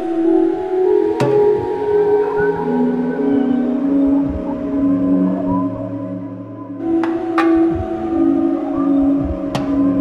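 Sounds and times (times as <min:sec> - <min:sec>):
ambient music sustained tones: 0:00.0 - 0:10.0.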